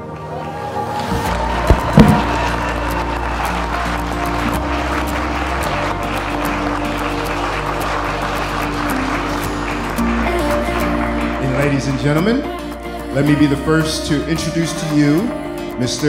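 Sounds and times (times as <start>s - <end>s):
crowd applauding: 0.0s - 13.6s
background music: 0.0s - 16.0s.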